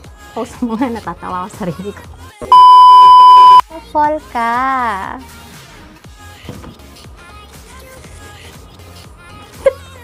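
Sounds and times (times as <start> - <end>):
censor bleep tone: 2.5 - 3.6.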